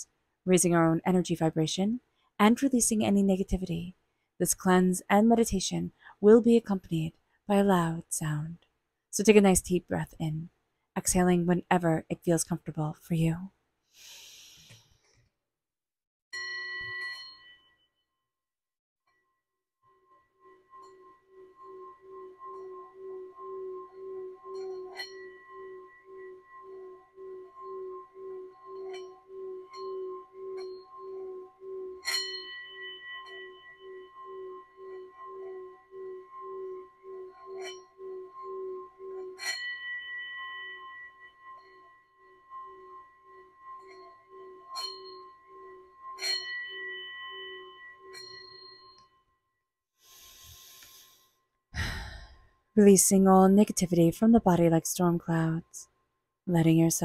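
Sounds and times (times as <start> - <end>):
singing bowl rubbed with mallet: 16.4 - 18.0, 19.9 - 49.4, 50.1 - 51.4
singing bowl strikes: 20.2 - 49.1.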